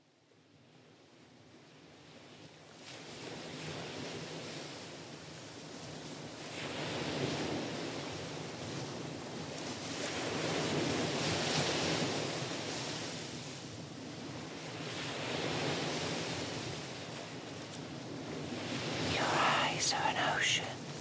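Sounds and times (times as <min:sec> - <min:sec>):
ocean waves washing in: 0:18.7 - 0:21.0.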